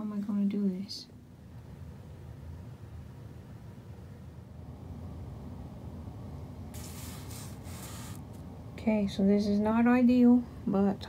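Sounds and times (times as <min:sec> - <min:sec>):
scraping rubs on microphone: 0:06.8 - 0:08.4.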